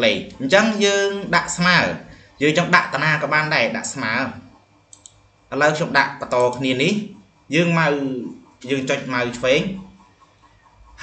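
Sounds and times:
man narrating: 0:00.0 - 0:04.5, 0:05.5 - 0:09.9
computer mouse clicks: 0:04.9 - 0:05.2, 0:06.2 - 0:07.0.

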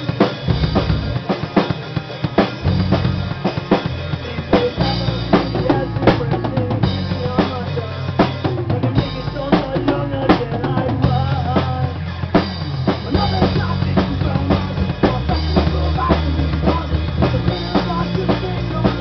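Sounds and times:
punk rock band playing live: 0:00.0 - 0:19.0.

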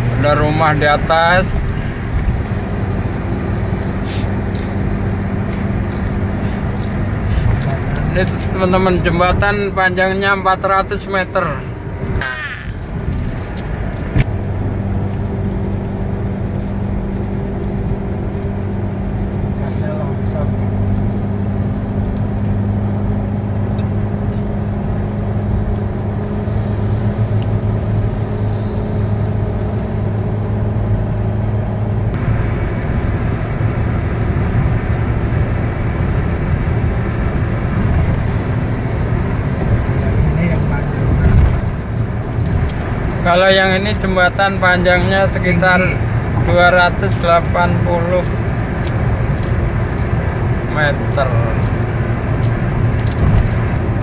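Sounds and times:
car road noise drone: 0:00.0 - 0:54.0.

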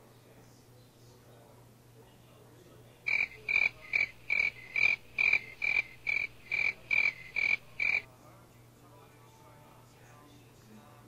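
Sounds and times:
high-pitched chirps: 0:03.1 - 0:08.0.

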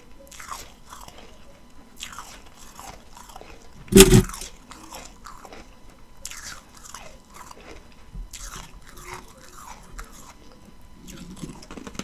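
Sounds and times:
chewing crunchy ice: 0:00.3 - 0:12.0.

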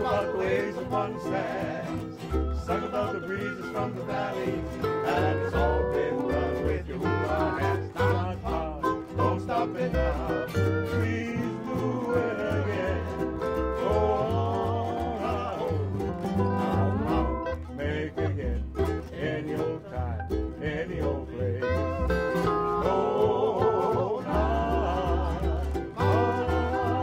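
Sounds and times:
string band playing hula music: 0:00.0 - 0:27.0.

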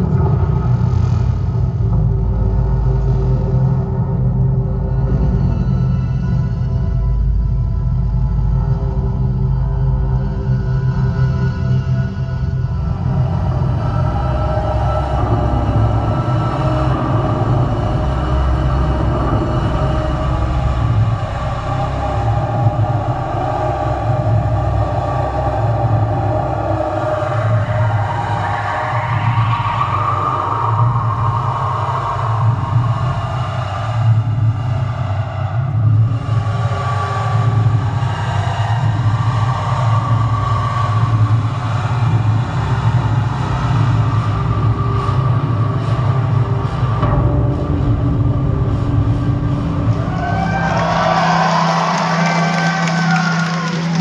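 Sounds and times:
dark synthesizer drone music: 0:00.0 - 0:54.0.

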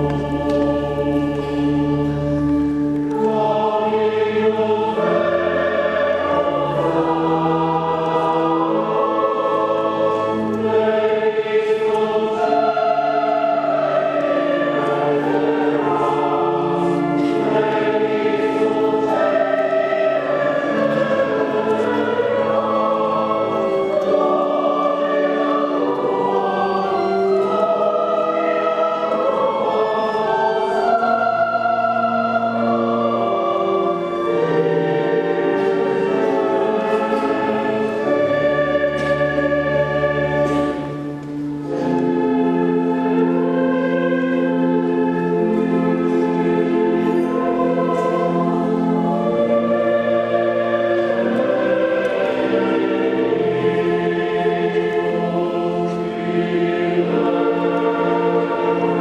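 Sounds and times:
choir singing a hymn: 0:00.0 - 0:59.0.

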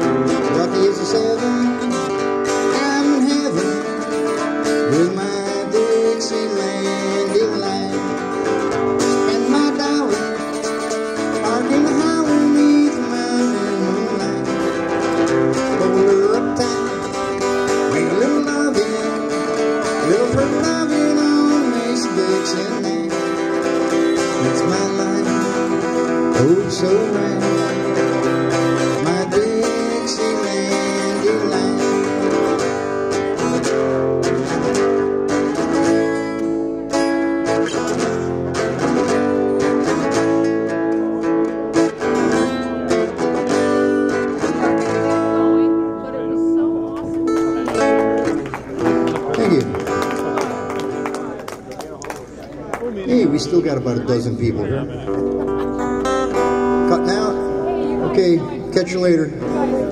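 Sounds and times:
acoustic guitar strumming: 0:00.0 - 0:51.5, 0:53.0 - 0:59.9
harmonica melody: 0:53.5 - 0:59.9.

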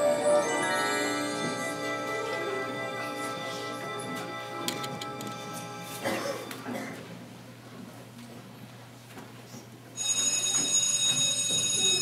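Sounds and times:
school bell electric buzz: 0:00.0 - 0:06.0, 0:10.0 - 0:12.0.

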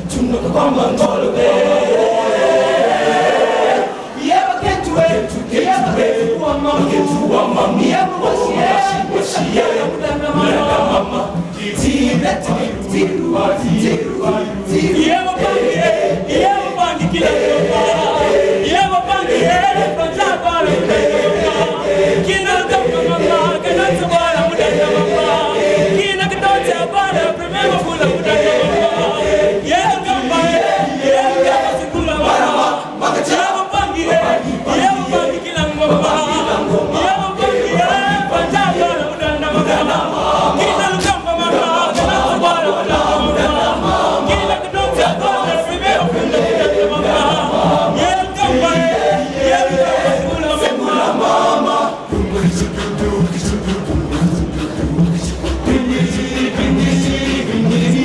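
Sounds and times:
boys choir singing a cappella: 0:00.0 - 0:58.0.

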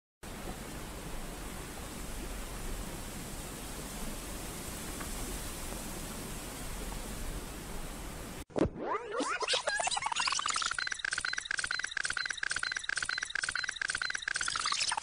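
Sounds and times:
steady hiss: 0:00.2 - 0:08.4.

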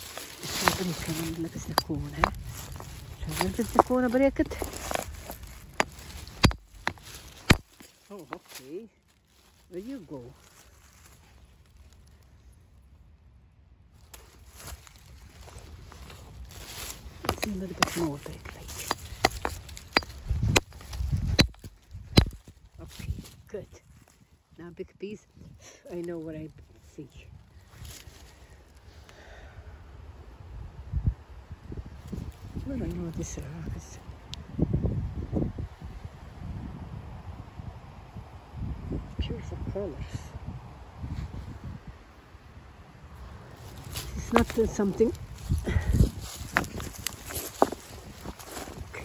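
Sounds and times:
microphone handling rumble: 0:00.0 - 0:08.6, 0:14.4 - 0:24.0, 0:43.2 - 0:49.0
hammer knocking on rock: 0:04.9 - 0:07.6, 0:18.7 - 0:20.6.

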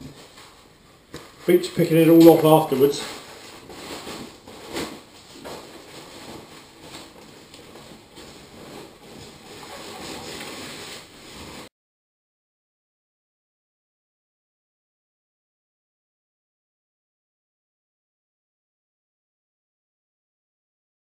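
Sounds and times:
rustling of wheel cover: 0:02.0 - 0:11.7.

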